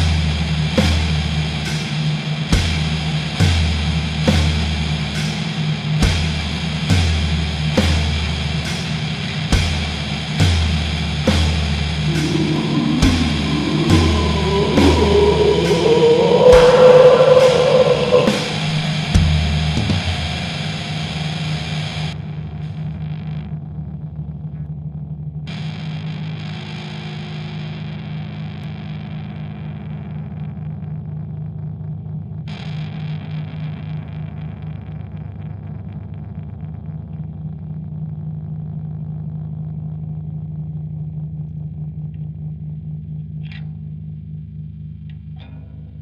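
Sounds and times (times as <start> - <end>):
low distorted drone: 10.7 - 22.2
washes of noisy texture: 11.9 - 19.0.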